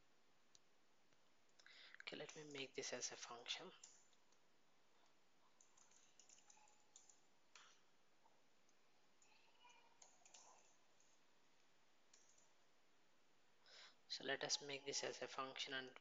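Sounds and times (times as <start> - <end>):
computer keyboard typing: 3.7 - 4.2, 5.6 - 7.8, 9.2 - 11.1, 12.1 - 12.5.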